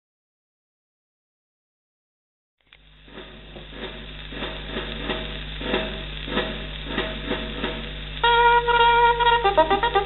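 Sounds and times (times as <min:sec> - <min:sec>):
crackling record surface noise: 0:02.6 - 0:10.0
sharp record clicks: 0:02.6 - 0:10.0
steady low hum: 0:02.7 - 0:10.0.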